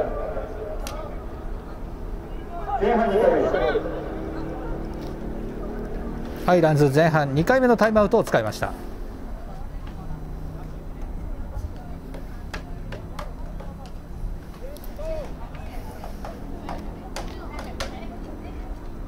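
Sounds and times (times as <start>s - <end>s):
distant voices of players: 0.0s - 19.0s
low outdoor rumble: 0.0s - 19.0s.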